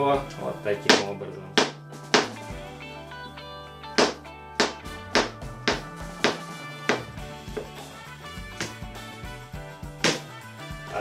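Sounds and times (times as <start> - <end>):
guitar music: 0.0 - 11.0.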